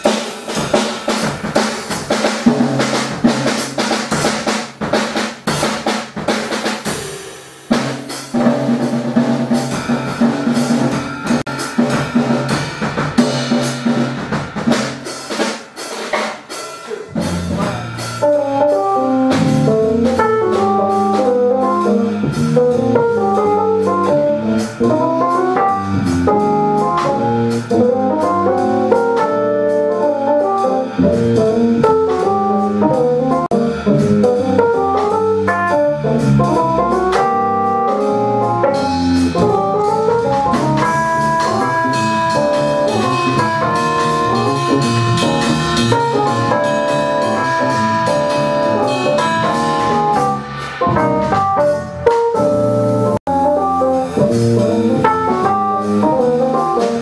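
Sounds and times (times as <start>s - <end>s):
drum kit: 0.0s - 57.0s
electric bass: 17.1s - 57.0s
keyboard arpeggios: 36.6s - 50.4s.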